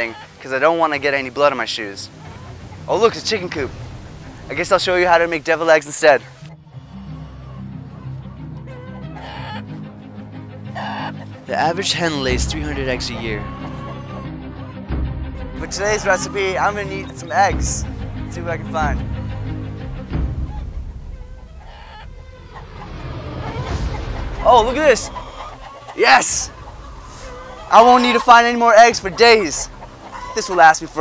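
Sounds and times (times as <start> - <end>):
background music: 0.0 - 31.0
hens clucking: 0.0 - 31.0.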